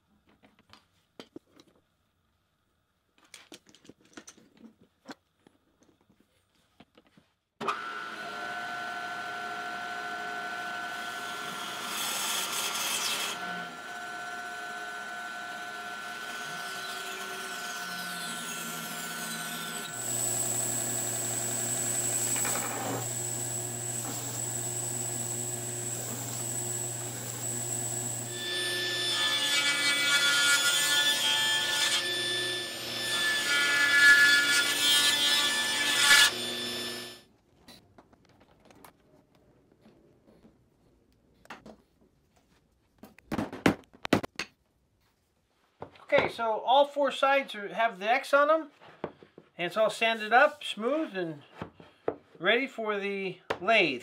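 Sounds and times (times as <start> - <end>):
belt sander grinding wood: 19.9 - 29.1.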